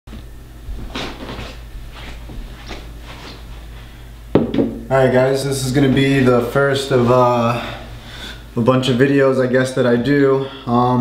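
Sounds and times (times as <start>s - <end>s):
steady low hum: 0.1s - 11.0s
soft knocks: 4.4s - 4.8s.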